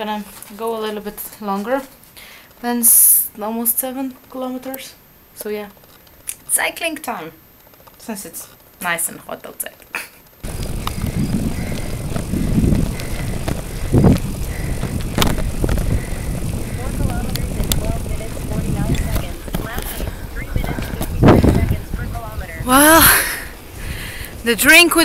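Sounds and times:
wind rumbling on microphone: 10.4s - 25.0s.

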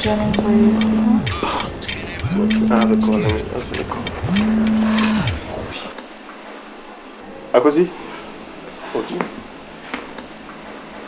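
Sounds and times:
mobile phone vibrating: 0.0s - 1.6s, 2.2s - 3.4s, 4.2s - 5.4s.

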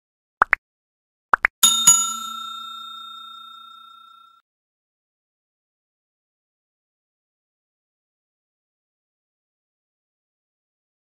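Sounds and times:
notification bell ding: 1.6s - 4.4s.

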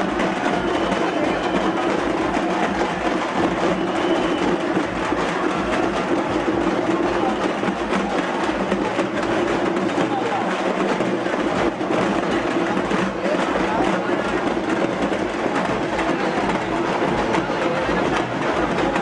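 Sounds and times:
crowd voices: 0.0s - 19.0s
frame drums beating: 0.0s - 19.0s.

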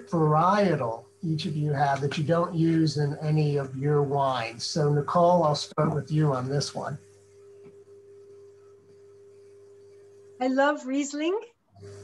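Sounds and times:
faint steady tone: 0.0s - 10.5s
low steady hum: 0.0s - 12.0s.

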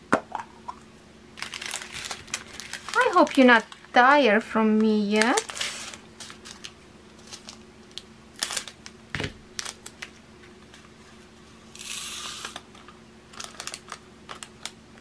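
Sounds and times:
plastic bags crinkling: 1.4s - 10.2s, 13.3s - 14.7s.

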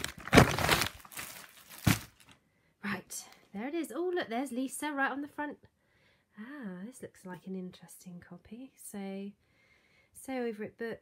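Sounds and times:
plastic envelope crinkling: 0.0s - 2.4s.

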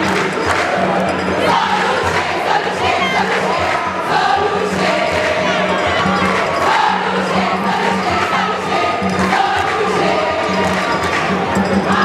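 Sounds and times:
crowd din: 0.0s - 12.0s
crowd of girls singing: 0.0s - 12.0s.

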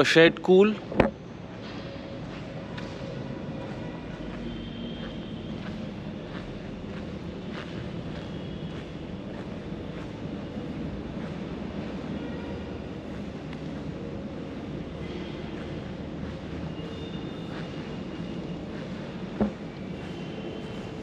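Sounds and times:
low rumbling background noise: 0.0s - 21.0s.

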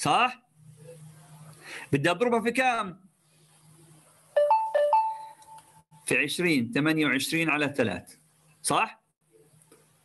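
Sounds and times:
electronic two-note tone: 4.4s - 5.5s.

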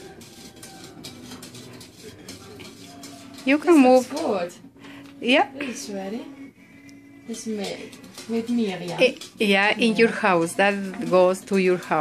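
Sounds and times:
metal spoon clinking in pot: 0.0s - 4.6s, 7.2s - 12.0s.

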